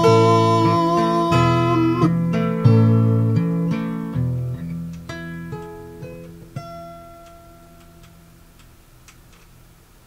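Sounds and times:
acoustic guitar chord: 0.0s - 8.4s.

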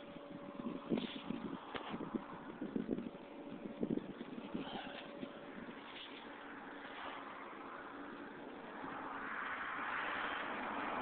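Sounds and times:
passing vehicle tyre and engine noise: 0.0s - 11.0s.

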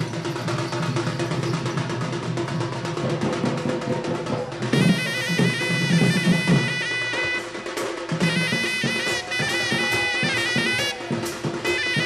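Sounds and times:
drum ensemble playing fast rhythms: 0.0s - 12.0s.

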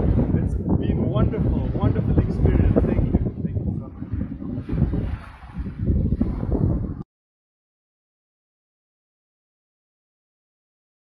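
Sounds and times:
waves washing onto stony shore: 0.0s - 6.5s
wind buffeting the microphone: 0.0s - 7.1s.

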